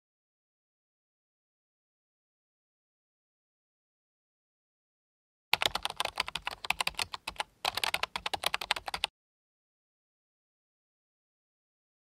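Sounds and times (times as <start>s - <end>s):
rapid irregular clicking: 5.6s - 9.1s.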